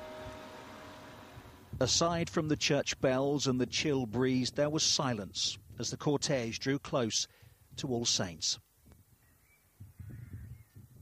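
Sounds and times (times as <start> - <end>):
wind rumble on microphone: 1.3 - 2.7, 3.4 - 6.4, 8.8 - 11.0.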